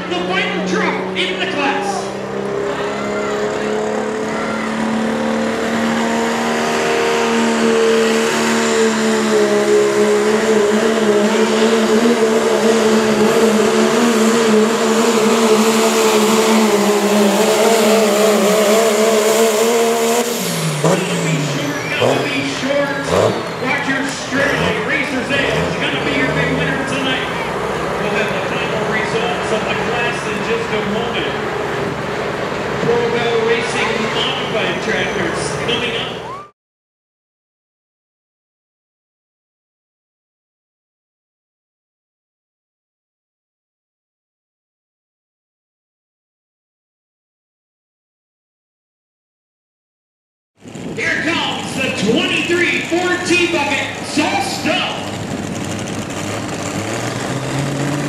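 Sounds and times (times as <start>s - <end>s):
diesel engine at full throttle: 0.0s - 36.5s, 50.6s - 58.0s.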